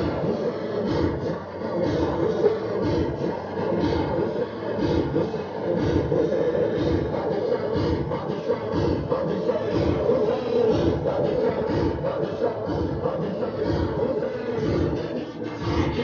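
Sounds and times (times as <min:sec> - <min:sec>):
crowd chanting: 0:00.0 - 0:16.0.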